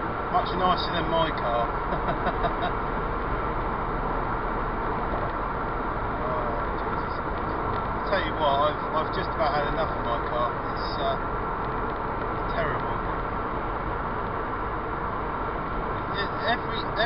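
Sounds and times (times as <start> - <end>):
road and engine noise inside car: 0.0 - 17.0.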